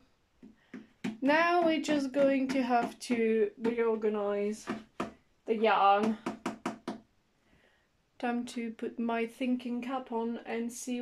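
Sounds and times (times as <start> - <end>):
knuckles knocking on wood: 0.4 - 4.0, 4.6 - 5.2, 6.0 - 7.0.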